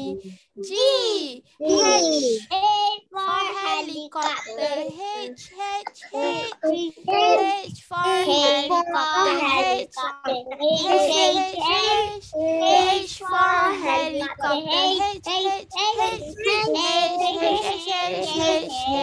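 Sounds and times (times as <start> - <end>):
child singing: 0.0 - 19.0.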